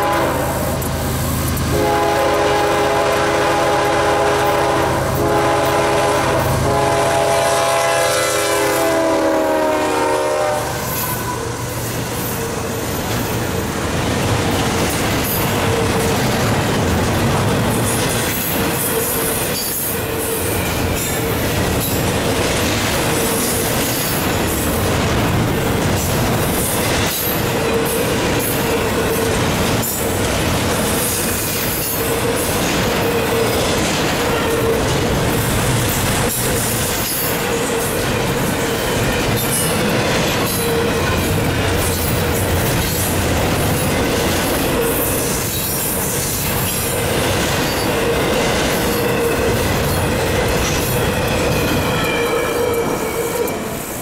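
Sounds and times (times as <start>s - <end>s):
train wheels on rails: 0.0s - 54.0s.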